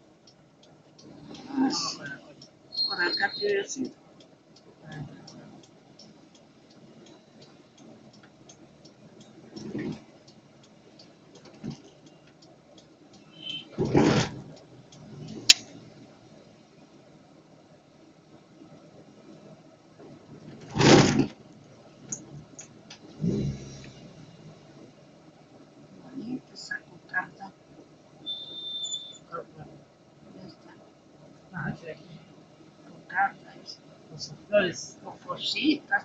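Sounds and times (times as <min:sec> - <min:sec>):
vehicle cabin and street noise: 0:00.0 - 0:36.0.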